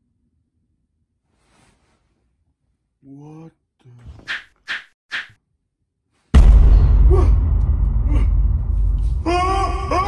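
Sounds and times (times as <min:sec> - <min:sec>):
deep loud rumble: 0:06.4 - 0:10.0.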